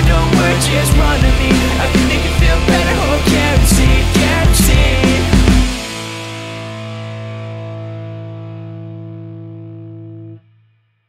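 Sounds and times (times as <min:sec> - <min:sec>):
distorted electric guitar chord: 0:00.0 - 0:10.4.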